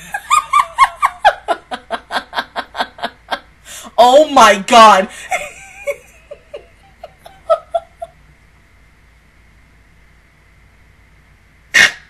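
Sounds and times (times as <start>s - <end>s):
woman laughing: 0.0s - 3.4s, 5.1s - 8.1s.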